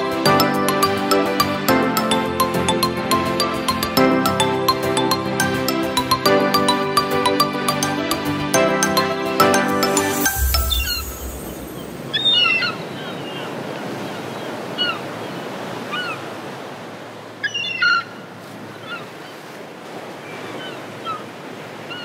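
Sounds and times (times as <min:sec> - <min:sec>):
sea surf: 0:03.2 - 0:22.0.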